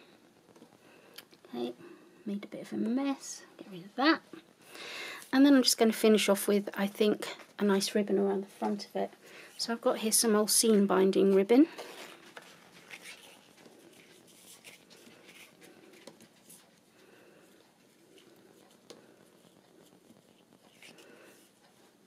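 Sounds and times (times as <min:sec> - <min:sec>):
ribbon rustling: 0:11.2 - 0:22.0.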